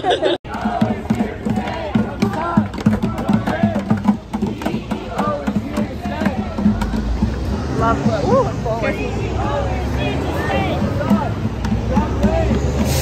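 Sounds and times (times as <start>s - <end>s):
crowd chanting in rhythm: 0.5s - 13.0s
regular beat: 0.5s - 13.0s.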